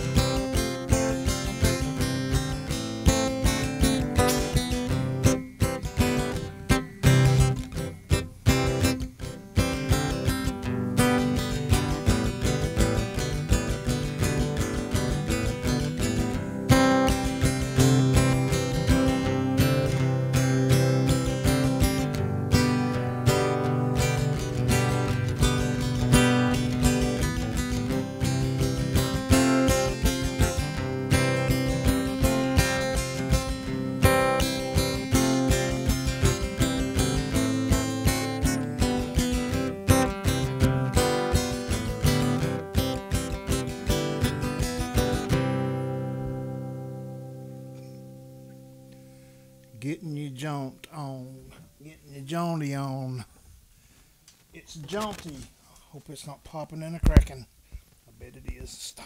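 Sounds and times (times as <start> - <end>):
acoustic guitar strummed: 0.0 - 53.1.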